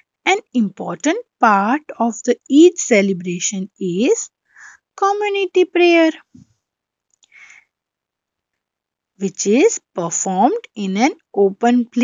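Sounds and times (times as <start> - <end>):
woman speaking: 0.3 - 4.3, 5.0 - 6.4, 9.2 - 12.0
soft breath: 4.5 - 4.8, 7.2 - 7.8.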